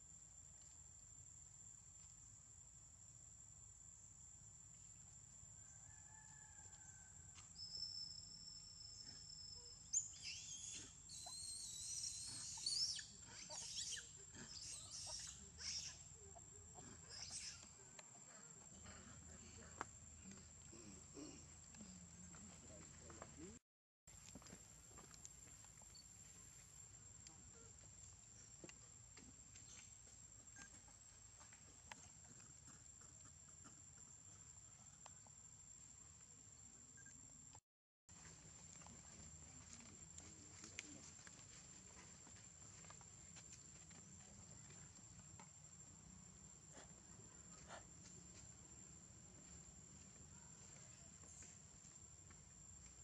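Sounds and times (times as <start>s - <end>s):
squealing animal calls: 10.2s - 16.1s.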